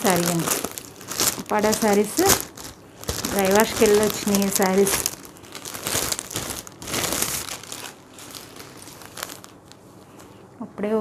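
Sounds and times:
plastic sheeting crinkling: 0:00.0 - 0:10.4.

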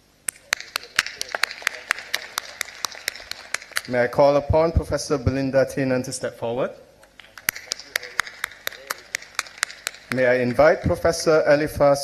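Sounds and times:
hand clapping: 0:00.2 - 0:04.2, 0:07.0 - 0:11.1.

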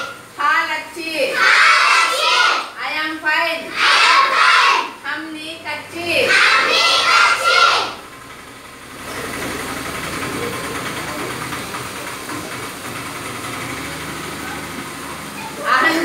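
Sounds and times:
steady background noise: 0:00.0 - 0:16.0
schoolchildren calling out in unison: 0:01.3 - 0:02.8, 0:03.7 - 0:05.0, 0:06.2 - 0:08.0.

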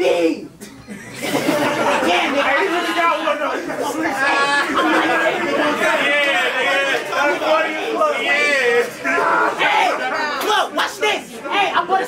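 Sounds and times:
crowd chatter: 0:00.0 - 0:12.0
men talking and calling out: 0:00.0 - 0:12.0.

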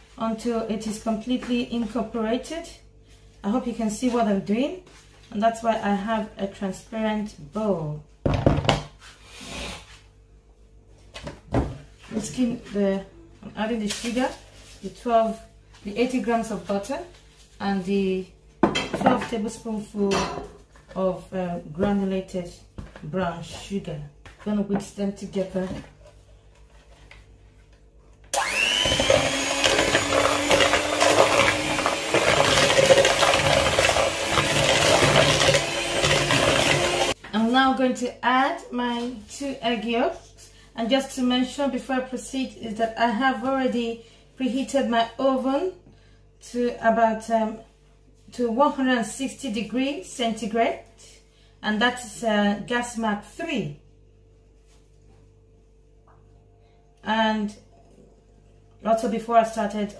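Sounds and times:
electric hand mixer whirring: 0:28.3 - 0:37.2.

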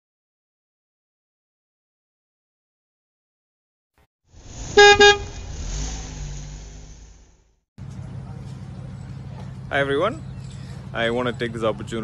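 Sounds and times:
loud pitched note: 0:04.4 - 0:07.5
low rumble: 0:04.4 - 0:07.6.

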